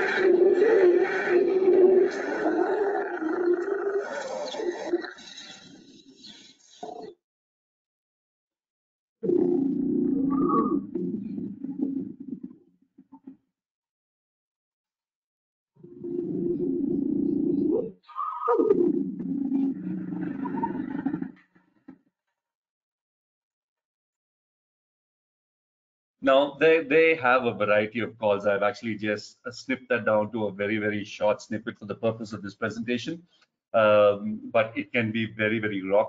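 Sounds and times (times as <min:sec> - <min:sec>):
lion growling call: 0:00.0 - 0:07.1, 0:09.2 - 0:12.4, 0:15.9 - 0:21.5.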